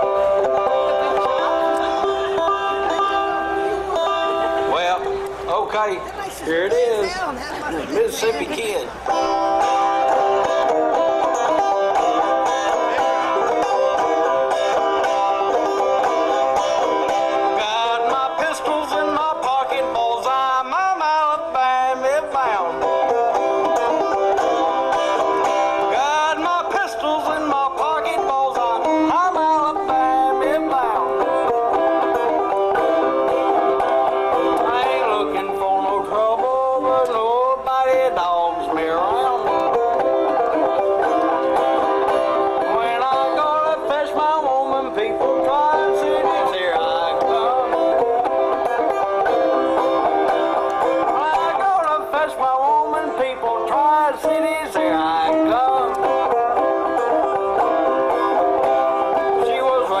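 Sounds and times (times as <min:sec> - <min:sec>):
banjo playing over sound system: 0:00.0 - 1:00.0.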